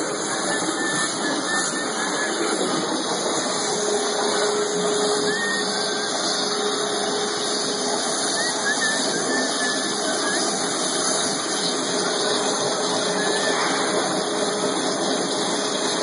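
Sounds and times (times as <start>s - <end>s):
waterjet cutter hissing: 0.0s - 16.0s.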